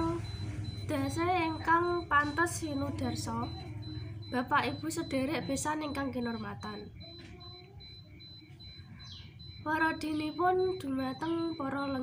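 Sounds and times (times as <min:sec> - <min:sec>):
faint high chirp: 0:01.8 - 0:12.0.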